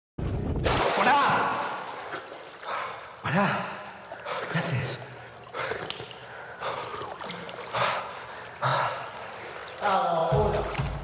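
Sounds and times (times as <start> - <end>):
swimmers splashing: 0.7 - 11.0
swimmers gasping for breath: 2.0 - 10.3.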